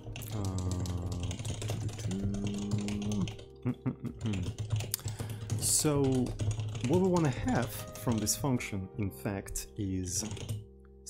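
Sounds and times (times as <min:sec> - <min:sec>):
computer keyboard typing: 0:00.0 - 0:08.7, 0:10.0 - 0:10.7.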